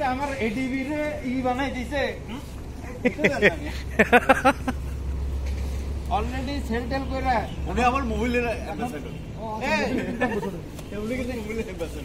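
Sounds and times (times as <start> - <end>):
low rumble with hiss: 0.0 - 12.0.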